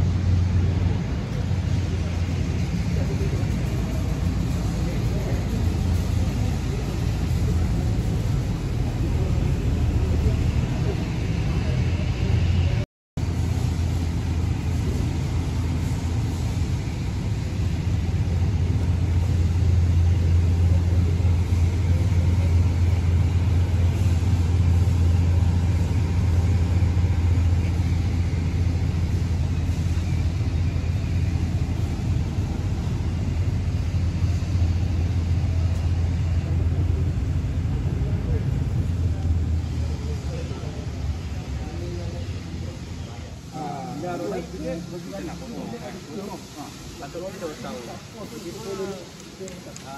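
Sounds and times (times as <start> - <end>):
faint voices: 0.0 - 49.9
low mechanical drone: 0.0 - 49.9.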